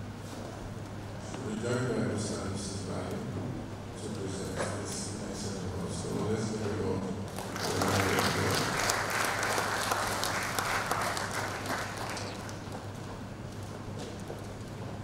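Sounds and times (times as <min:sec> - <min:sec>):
audience applauding: 0:07.4 - 0:12.8.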